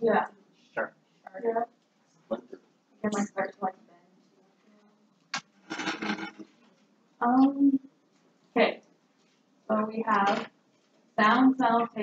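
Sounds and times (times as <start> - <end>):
faint hum: 2.3 - 7.9.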